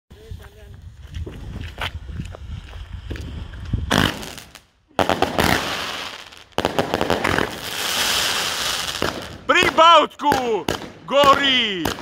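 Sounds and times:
firework fountain hissing and crackling: 0:02.4 - 0:09.4.

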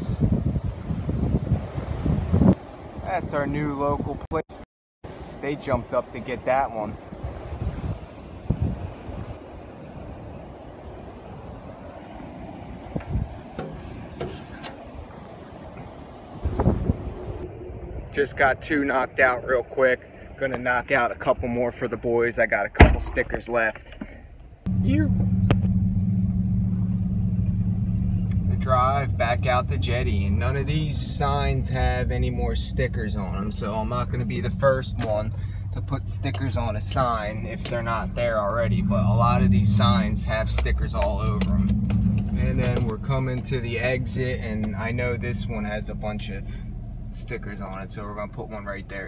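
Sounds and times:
wind buffeting microphone: 0:00.0 - 0:04.3, 0:06.1 - 0:22.1, 0:24.6 - 0:49.0
truck engine and road hum: 0:05.1 - 0:49.0.

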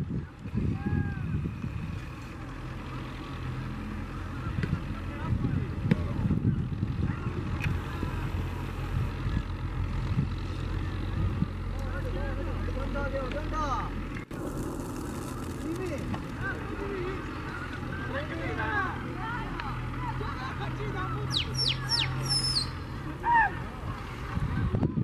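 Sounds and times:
wind buffeting microphone: 0:00.0 - 0:02.3, 0:04.4 - 0:11.7, 0:23.5 - 0:25.0
tractor engine running: 0:01.5 - 0:24.5.

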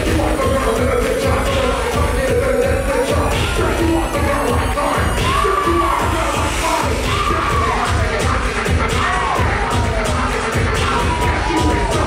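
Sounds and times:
crowd cheering and shouting: 0:00.0 - 0:12.0
dance music with pounding bass: 0:00.0 - 0:12.0.

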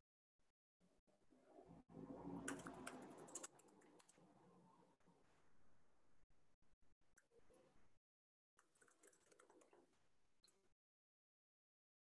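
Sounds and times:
faint keyboard typing: 0:02.4 - 0:04.6, 0:08.6 - 0:10.7.

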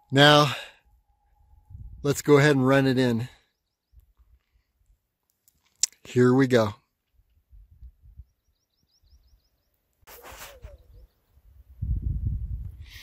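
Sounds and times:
wind on microphone: 0:01.4 - 0:02.1, 0:10.1 - 0:13.0
small bird chirping: 0:08.1 - 0:11.4.

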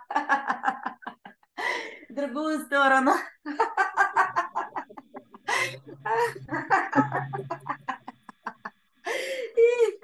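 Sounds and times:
woman laughing: 0:03.4 - 0:10.0.

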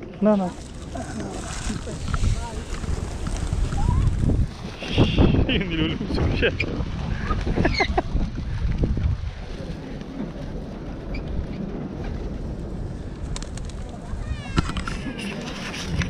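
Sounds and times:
wind rumble on microphone: 0:00.0 - 0:16.0
pigeon wingbeats: 0:10.0 - 0:16.0.

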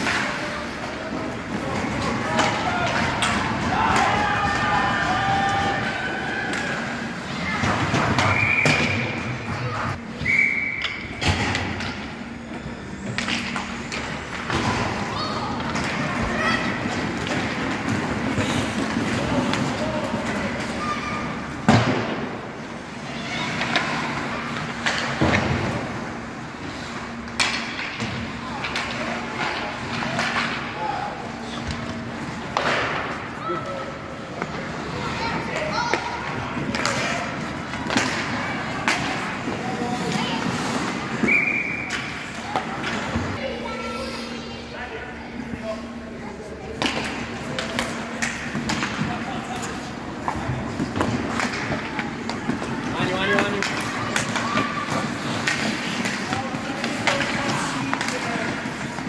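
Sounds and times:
puck and sticks knocking boards: 0:32.4 - 0:33.2, 0:46.8 - 0:59.0.

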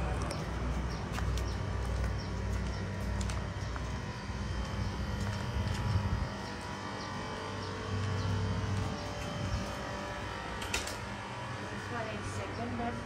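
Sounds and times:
low rumble: 0:00.0 - 0:11.7.

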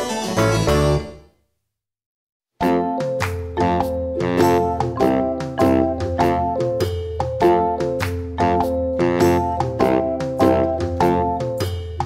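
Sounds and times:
keyboard music with piano notes: 0:00.0 - 0:01.3, 0:02.6 - 0:12.0.

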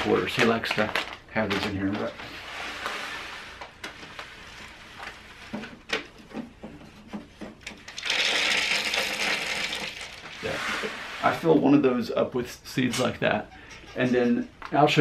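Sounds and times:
plastic bag crinkling: 0:00.0 - 0:02.4, 0:08.0 - 0:10.6
seeds pouring: 0:08.0 - 0:11.0.

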